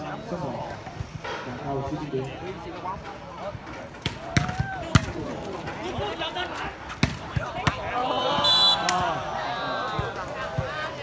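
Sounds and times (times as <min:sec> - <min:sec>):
spectators shouting and cheering: 0:04.0 - 0:11.0
referee's whistle: 0:08.2 - 0:09.0.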